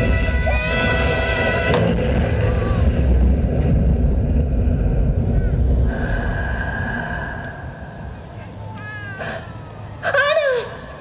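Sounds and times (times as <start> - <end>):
loud low rumble: 0.0 - 9.2
murmur of spectators: 7.6 - 11.0.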